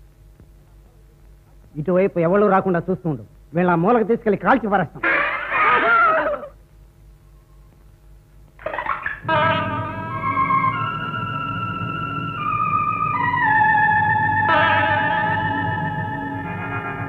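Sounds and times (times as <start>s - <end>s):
wavering theremin-like film music: 8.8s - 17.0s.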